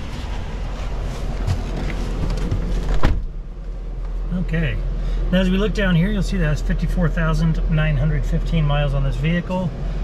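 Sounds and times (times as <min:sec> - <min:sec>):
rustling and handling knocks: 0:01.2 - 0:03.3
loud car door thump: 0:01.5 - 0:03.4.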